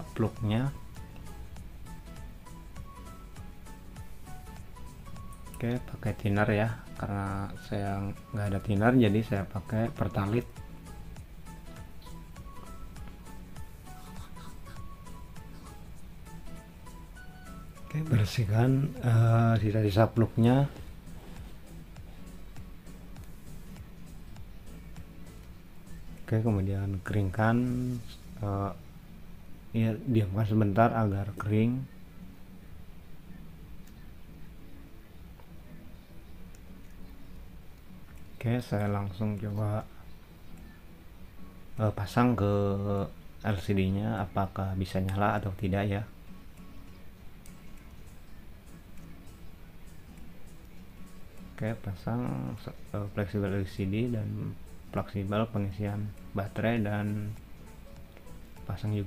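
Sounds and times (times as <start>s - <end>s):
quiet background music: 0.0s - 59.0s.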